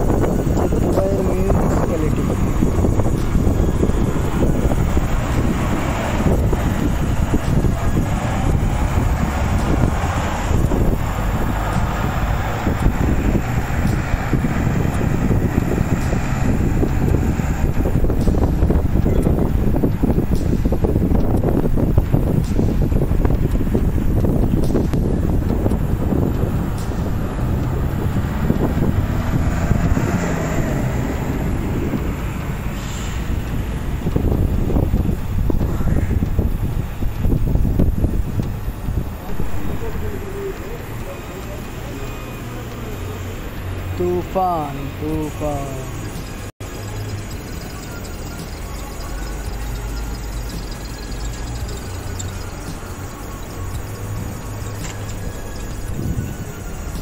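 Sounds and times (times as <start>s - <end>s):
garbage truck engine: 0.0s - 57.0s
strong wind buffeting microphone: 0.0s - 57.0s
traffic: 0.0s - 57.0s.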